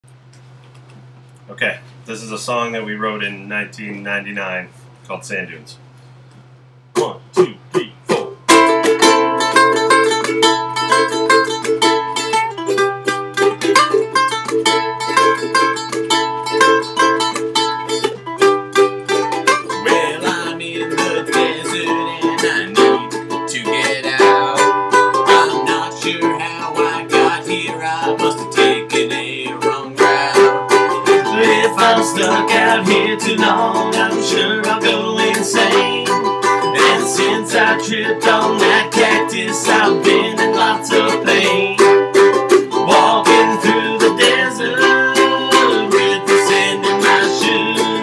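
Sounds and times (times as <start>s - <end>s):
ukuleles strumming: 7.0s - 48.0s.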